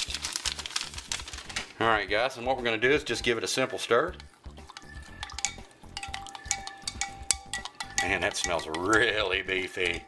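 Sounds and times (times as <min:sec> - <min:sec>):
spoon clinking in glass cup: 0:04.2 - 0:09.2.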